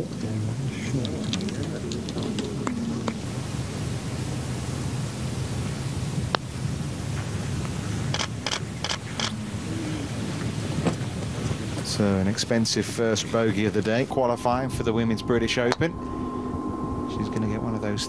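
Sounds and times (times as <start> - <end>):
murmur of spectators: 0.0 - 3.3, 9.1 - 14.8
wind noise: 0.0 - 18.0.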